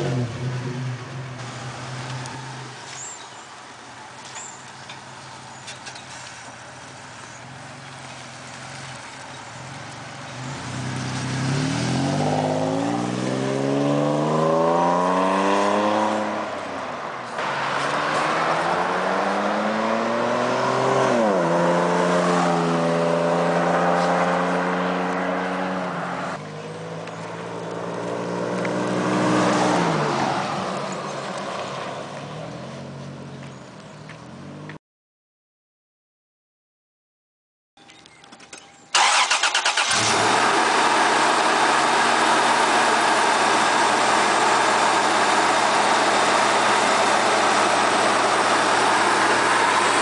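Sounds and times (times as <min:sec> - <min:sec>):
pickup truck accelerating: 0:07.2 - 0:16.6, 0:17.4 - 0:32.0, 0:39.0 - 0:50.0.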